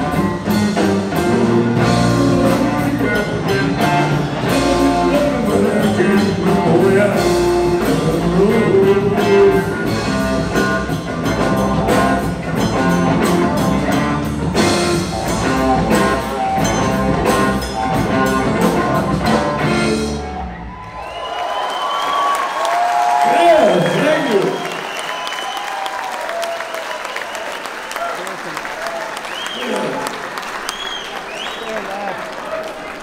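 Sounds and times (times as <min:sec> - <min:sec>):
blues-rock band playing: 0:00.0 - 0:21.0.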